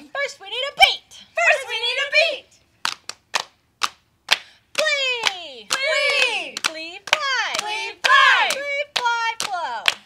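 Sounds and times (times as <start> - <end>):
hand slaps keeping time: 2.8 - 10.0
group singing: 7.2 - 8.9.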